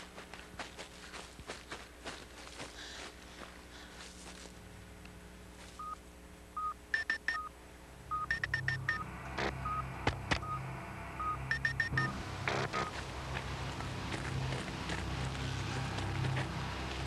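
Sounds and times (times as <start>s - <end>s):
low steady hum: 0.0s - 17.0s
keypad electronic beeps: 6.6s - 7.5s, 8.1s - 9.0s, 11.2s - 12.9s.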